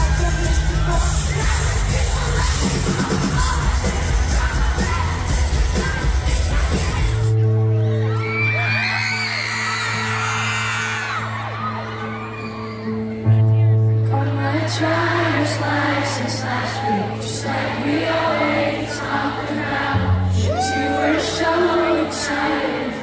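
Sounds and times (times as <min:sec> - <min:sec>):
fans screaming and whooping: 0:00.0 - 0:13.5, 0:16.6 - 0:17.4, 0:20.2 - 0:22.0
live pop-rock band playing: 0:00.0 - 0:19.4.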